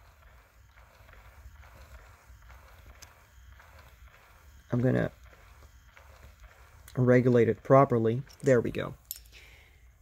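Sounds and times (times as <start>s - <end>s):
motor hum: 0.0s - 9.0s
faint rhythmic gear clicking: 0.0s - 10.0s.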